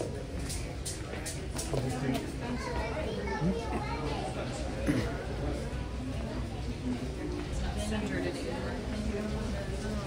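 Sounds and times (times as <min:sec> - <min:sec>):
people talking at once: 0:00.0 - 0:10.0.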